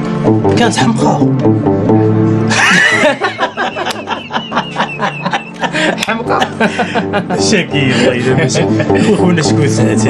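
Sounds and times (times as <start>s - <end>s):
man chuckling: 2.5s - 9.1s.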